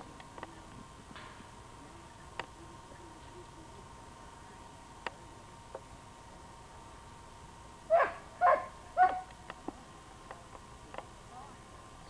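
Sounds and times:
dog barking sharply: 7.9 - 9.3.

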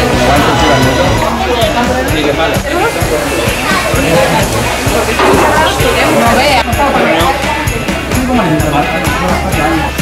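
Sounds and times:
song with singing over a beat: 1.9 - 10.0.

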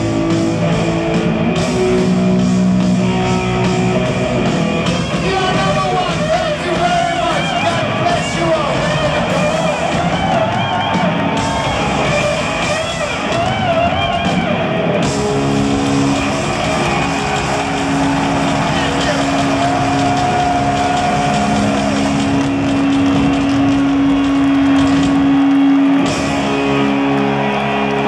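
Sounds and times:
arena crowd: 0.0 - 28.0
distorted electric guitar: 0.0 - 28.0
heavy metal band: 0.0 - 28.0.

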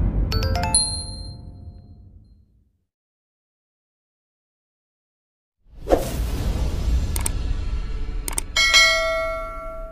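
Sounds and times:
low rumble: 0.0 - 2.6, 5.7 - 9.9
bright bell ding: 0.4 - 1.9, 8.6 - 9.9.

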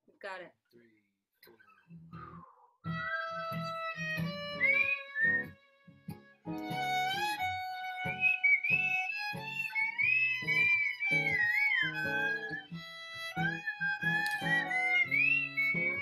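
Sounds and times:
acoustic guitar strumming chords: 2.2 - 16.0
fiddle melody sliding: 2.9 - 16.0.

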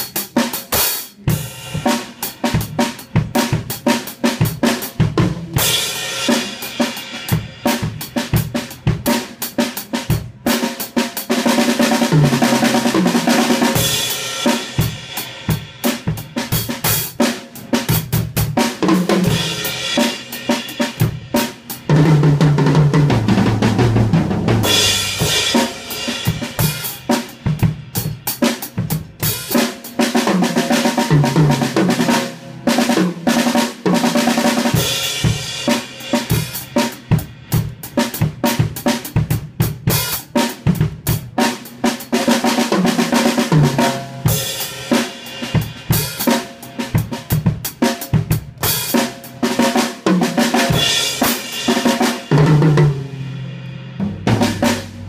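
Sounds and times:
acoustic drum kit played hard: 0.0 - 55.0.

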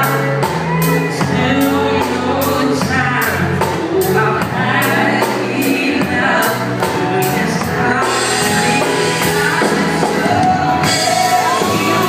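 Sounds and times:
drums: 0.0 - 12.0
guitars: 0.0 - 12.0
man singing: 0.0 - 12.0.

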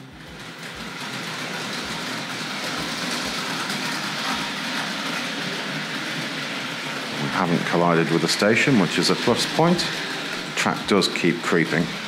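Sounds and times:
model train rattling on track: 0.0 - 12.0.

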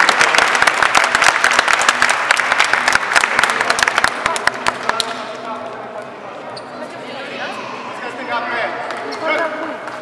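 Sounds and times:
indistinct talking in a hall: 0.0 - 10.0.

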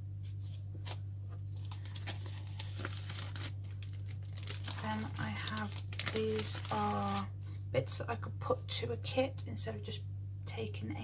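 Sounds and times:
plastic sleeve crinkling: 0.3 - 7.4.

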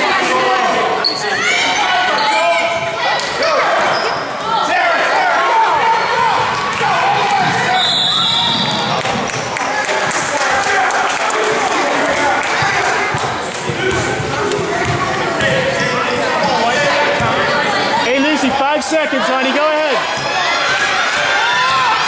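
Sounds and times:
basketball bouncing on gym floor: 12.6 - 16.0
people shouting: 19.1 - 22.0.

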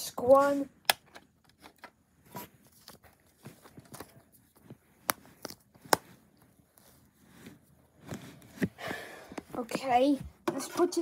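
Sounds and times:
plastic clicks of dvd case: 0.8 - 2.0.

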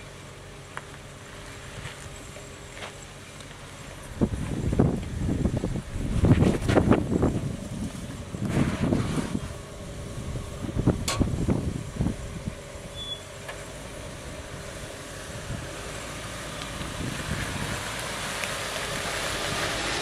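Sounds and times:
vehicle engine and tyres: 0.0 - 20.0.

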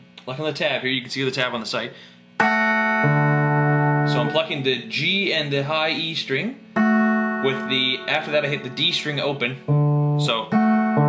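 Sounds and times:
clean electric guitar notes: 2.4 - 4.9, 6.8 - 11.0.

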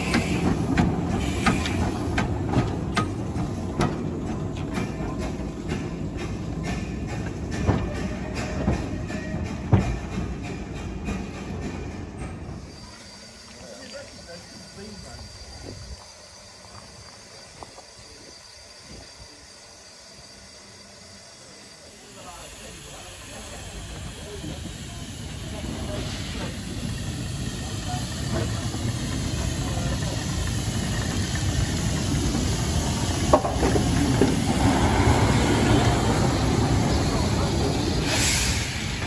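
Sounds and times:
steam locomotive hissing: 0.0 - 39.0.

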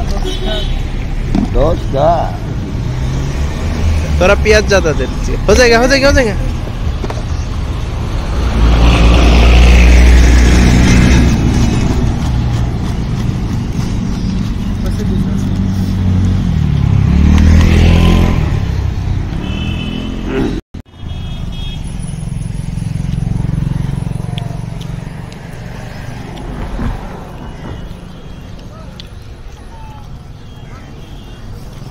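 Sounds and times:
vehicles passing: 0.0 - 31.9.

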